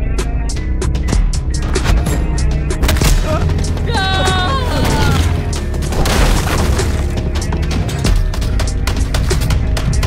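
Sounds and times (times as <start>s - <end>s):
dramatic film score music: 0.0s - 10.0s.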